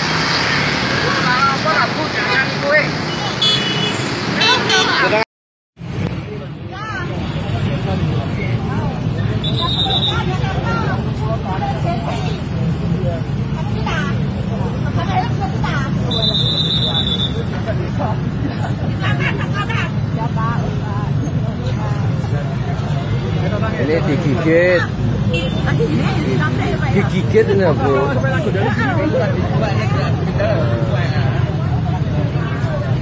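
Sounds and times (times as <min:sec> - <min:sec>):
car and motorbike engines: 0:00.0 - 0:05.2, 0:05.8 - 0:33.0
people arguing: 0:09.5 - 0:12.5.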